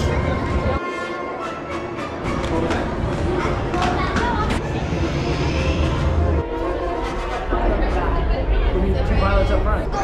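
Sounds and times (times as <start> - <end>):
music playing: 0.0 - 9.0
people talking: 2.4 - 10.0.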